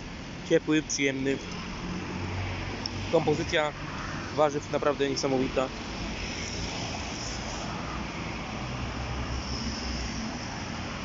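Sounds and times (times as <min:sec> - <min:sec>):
even hiss: 0:06.1 - 0:11.0.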